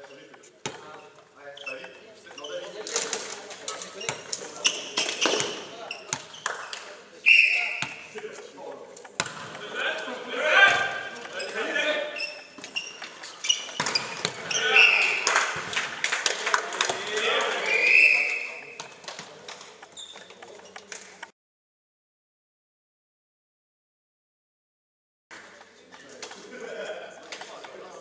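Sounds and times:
volleyball being struck: 0:07.4 - 0:08.4, 0:09.1 - 0:09.7, 0:13.6 - 0:15.9
players shouting: 0:14.4 - 0:15.4.

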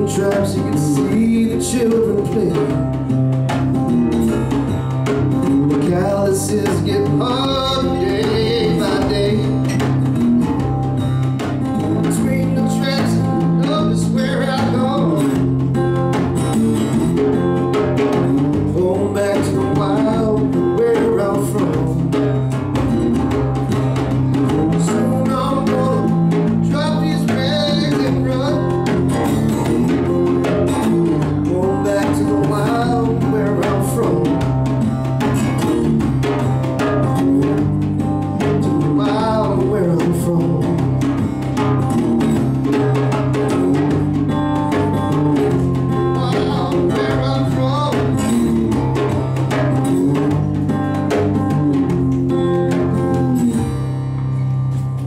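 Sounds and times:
hand drum beating: 0:00.0 - 0:55.0
slide guitar: 0:00.0 - 0:55.0.

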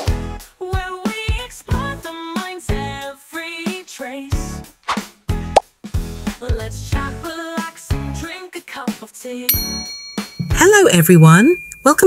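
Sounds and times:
upbeat intro jingle: 0:10.4 - 0:11.5.

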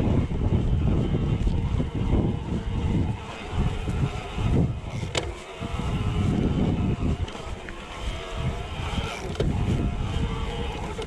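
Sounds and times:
bike tyres rumbling over dirt trail: 0:00.0 - 0:11.0
wind buffeting microphone: 0:00.0 - 0:11.0.

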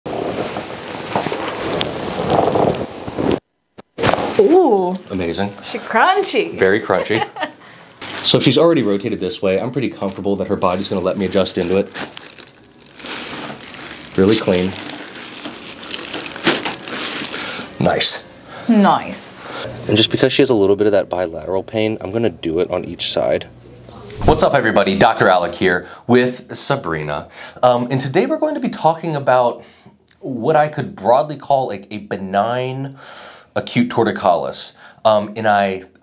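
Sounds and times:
clothing rubbing on microphone: 0:00.1 - 0:03.4.

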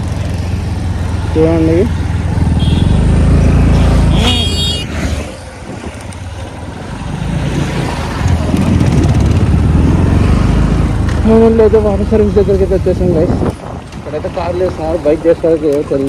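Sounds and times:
motorcycle engine running: 0:00.0 - 0:04.8, 0:08.2 - 0:13.4
road and wind noise: 0:00.0 - 0:16.0.

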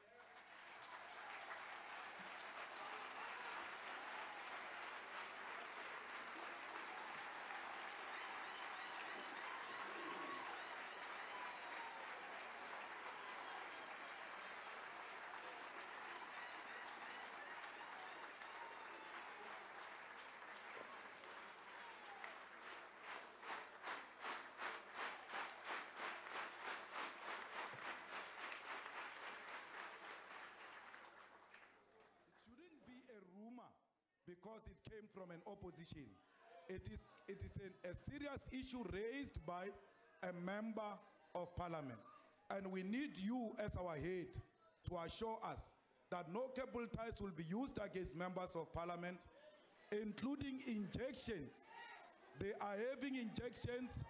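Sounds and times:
crowd applauding: 0:00.0 - 0:31.8, 0:51.8 - 0:54.0.

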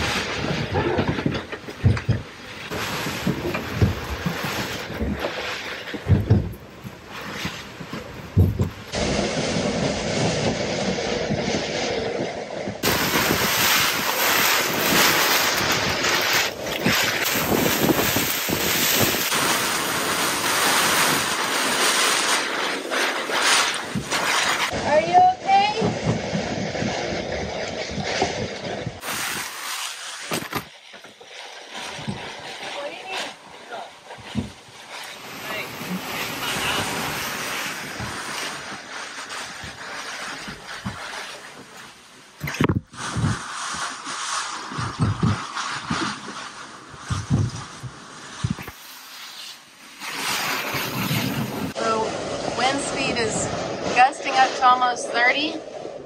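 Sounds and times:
wind buffeting microphone: 0:00.0 - 0:22.2, 0:50.7 - 0:56.0
loud rush of wind and rain: 0:08.0 - 0:30.7, 0:34.0 - 0:41.0, 0:50.1 - 0:55.2
knocks and bumps in cabin: 0:08.2 - 0:08.9.

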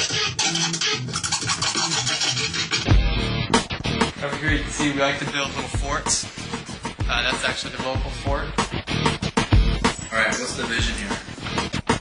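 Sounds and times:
turntable scratching: 0:00.0 - 0:08.8, 0:10.8 - 0:12.0
music track: 0:00.0 - 0:12.0.

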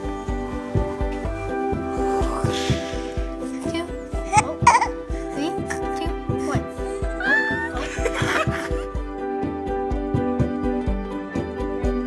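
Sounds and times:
background music with beat: 0:00.0 - 0:12.0
baby squealing: 0:04.2 - 0:05.0.

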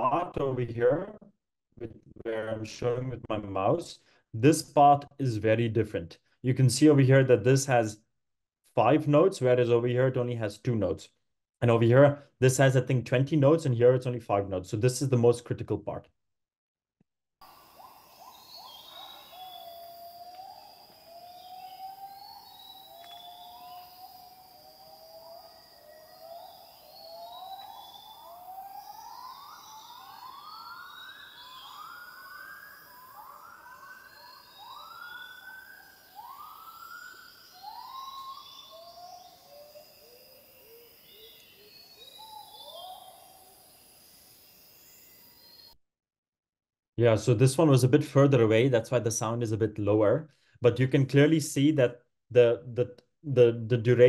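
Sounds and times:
gibbon whooping call: 0:17.4 - 0:43.8.

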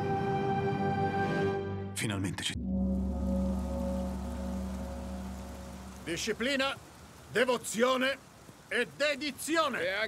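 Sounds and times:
held low music chord: 0:00.0 - 0:06.5
steady rain falling: 0:02.8 - 0:10.0.

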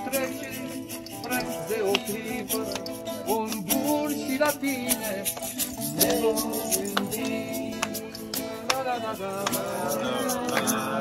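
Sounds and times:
acoustic guitar strumming: 0:00.0 - 0:11.0
people singing: 0:00.0 - 0:11.0.

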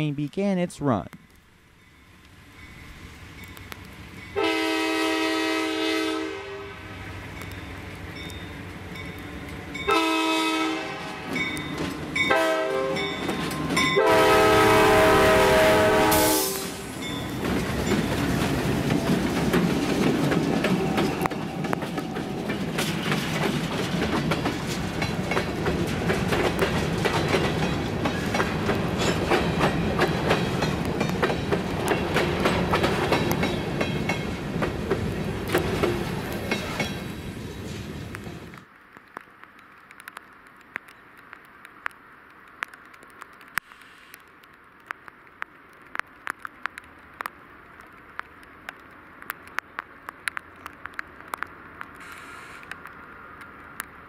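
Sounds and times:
locomotives rumbling past: 0:01.9 - 0:38.6
train air horn blasts: 0:04.4 - 0:06.8, 0:09.9 - 0:11.4, 0:12.3 - 0:13.0, 0:14.0 - 0:16.9
train wheels clickety-clack: 0:11.3 - 0:14.0, 0:16.1 - 0:38.6.

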